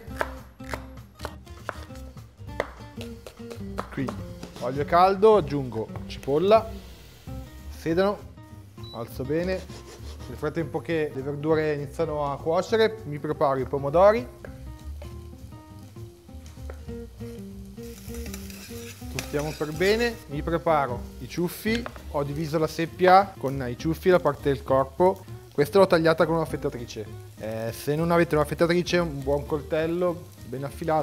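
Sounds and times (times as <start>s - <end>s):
knife chopping on plastic board: 0.0s - 4.7s
background music: 0.0s - 31.0s
vegetables sizzling in oil: 6.1s - 10.2s, 14.2s - 31.0s.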